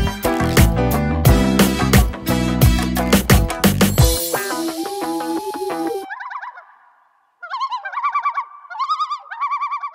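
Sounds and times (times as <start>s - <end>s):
background music: 0.0s - 6.1s.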